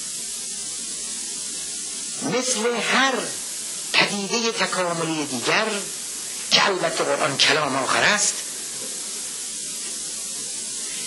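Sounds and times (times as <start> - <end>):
high recording hiss: 0.0 - 11.0.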